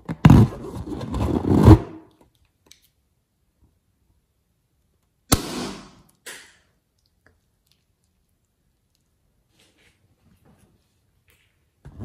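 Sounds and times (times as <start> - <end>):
balloon rubbing handling noise: 0.1 - 2.0.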